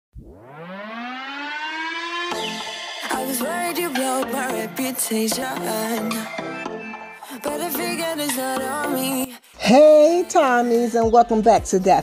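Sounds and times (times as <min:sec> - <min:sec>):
rising pitched tone: 0:00.1 - 0:08.0.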